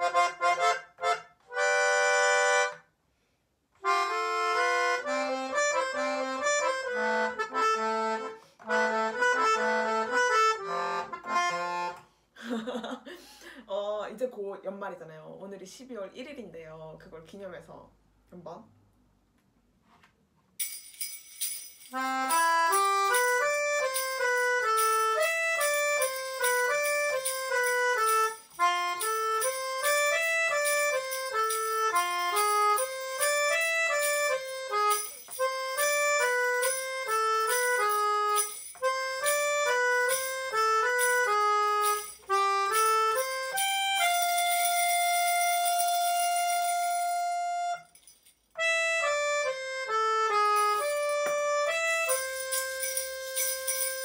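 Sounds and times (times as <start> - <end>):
melodica melody: 0.0 - 2.9, 3.8 - 12.1, 20.6 - 54.0
hand shaker rhythm: 20.6 - 48.3, 50.3 - 54.0.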